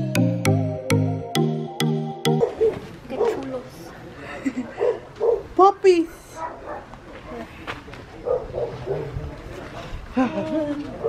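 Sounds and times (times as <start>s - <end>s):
small dogs barking and yipping: 2.3s - 3.5s, 8.3s - 9.2s.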